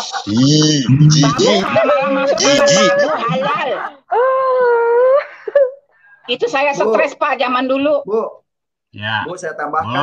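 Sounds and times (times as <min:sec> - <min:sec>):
woman wailing: 0:01.9 - 0:05.3.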